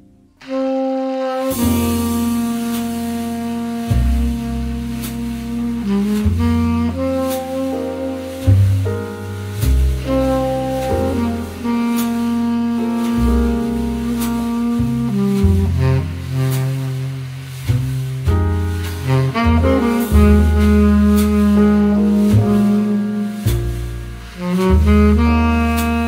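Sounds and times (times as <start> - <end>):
walking double bass: 0.0 - 26.0
saxophone melody: 0.4 - 9.2, 9.8 - 17.6, 18.8 - 26.0.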